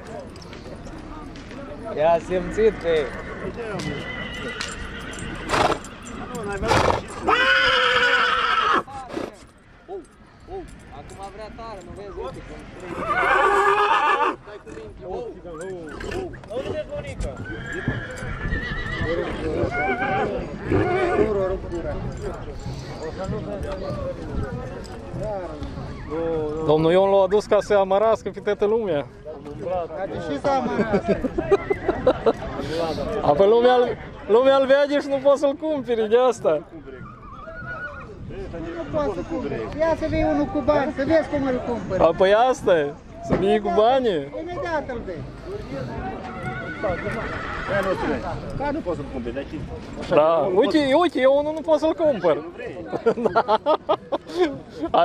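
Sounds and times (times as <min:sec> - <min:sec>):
horse whinnying: 0:02.7 - 0:06.0, 0:06.6 - 0:09.3, 0:12.9 - 0:14.5, 0:17.3 - 0:21.4, 0:37.0 - 0:38.2, 0:46.2 - 0:48.2
people talking: 0:19.0 - 0:37.1, 0:38.3 - 0:55.0.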